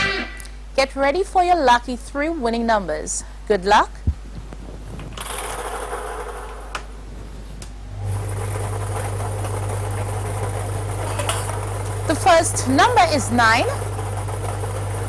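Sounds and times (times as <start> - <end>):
motor hum: 4.0 - 15.0.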